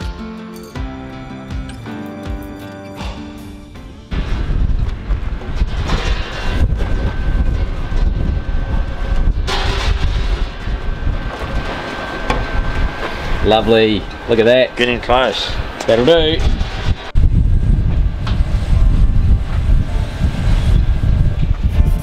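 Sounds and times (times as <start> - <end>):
acoustic guitar music: 0.0 - 7.5
wind on microphone: 4.1 - 14.2, 15.5 - 22.0.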